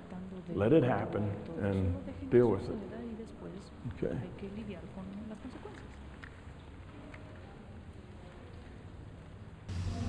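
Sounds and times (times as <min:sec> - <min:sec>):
faint low hum: 0:09.5 - 0:10.0
electrical hum and hiss: 0:09.7 - 0:10.0.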